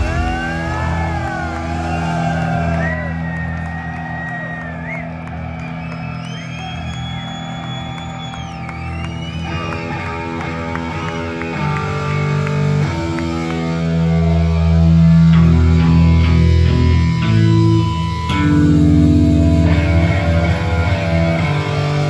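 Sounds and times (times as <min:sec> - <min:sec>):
crowd cheering and whooping: 0:00.0 - 0:16.8
long high whistle: 0:01.6 - 0:10.1
electric guitar and bass chord: 0:10.8 - 0:22.0.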